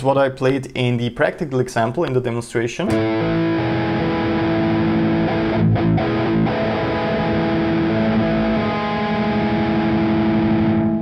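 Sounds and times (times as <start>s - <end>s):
distorted electric guitar chords: 2.9s - 11.0s.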